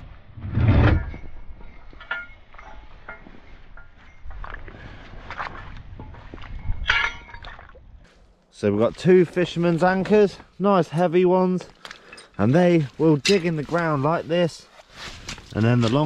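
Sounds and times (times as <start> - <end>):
short ringing clinks: 1.2 - 4.2, 6.6 - 7.5.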